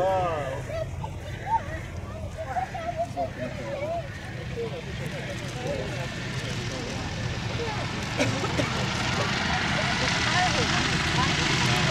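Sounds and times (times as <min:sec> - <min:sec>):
propeller plane engine: 0:00.0 - 0:11.9.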